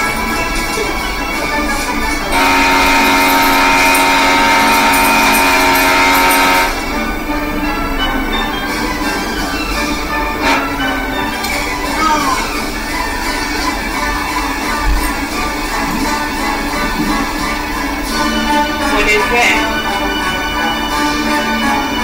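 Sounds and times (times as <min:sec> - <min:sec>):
background music from tv: 0:00.0 - 0:22.0
loud held chord: 0:00.0 - 0:22.0.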